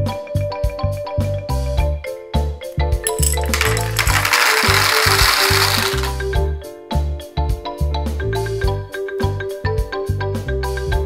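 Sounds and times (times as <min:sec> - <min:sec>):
candies clattering into plastic tub: 0:03.1 - 0:06.3.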